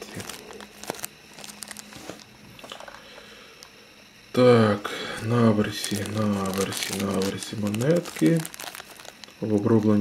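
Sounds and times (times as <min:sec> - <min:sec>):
plastic bag crinkling: 0:00.0 - 0:03.0, 0:05.1 - 0:10.0.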